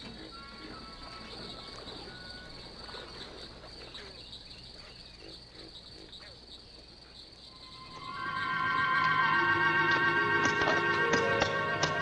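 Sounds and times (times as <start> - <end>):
high-pitched insect chirring: 0.0 - 12.0.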